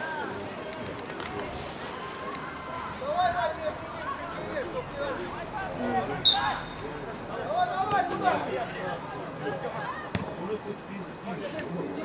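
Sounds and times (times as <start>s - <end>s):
distant shouting voices: 1.4s - 10.2s
short high whistle blast: 6.2s - 6.8s.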